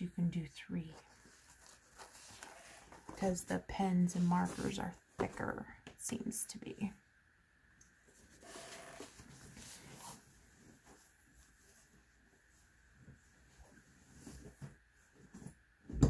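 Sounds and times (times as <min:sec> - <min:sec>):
fabric pencil case rustling: 0:00.8 - 0:05.0, 0:08.2 - 0:12.3.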